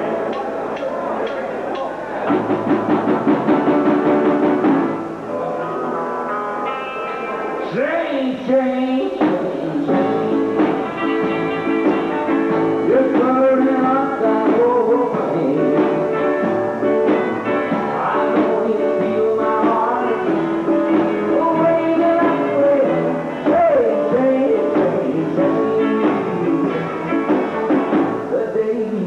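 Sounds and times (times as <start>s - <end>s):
electric guitar: 0.0s - 29.0s
upright bass: 2.3s - 29.0s
person singing: 5.2s - 29.0s.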